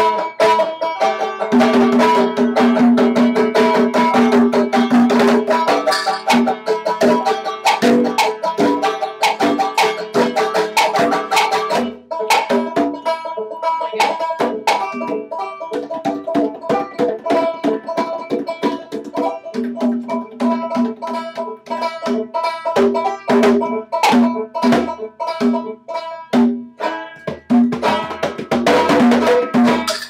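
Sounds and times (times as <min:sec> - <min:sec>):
banjo picking: 0:00.0 - 0:30.0
conga drumming: 0:00.0 - 0:30.0.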